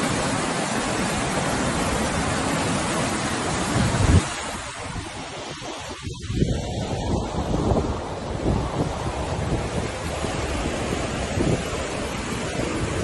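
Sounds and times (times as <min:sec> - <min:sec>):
floodwater rushing: 0:00.0 - 0:13.0.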